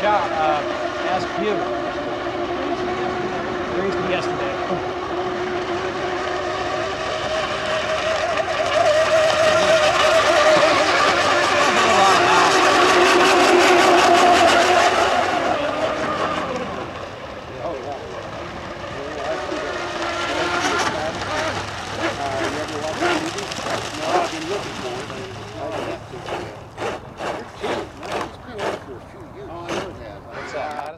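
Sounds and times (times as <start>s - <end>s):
racing boat motor whine: 0.0s - 30.9s.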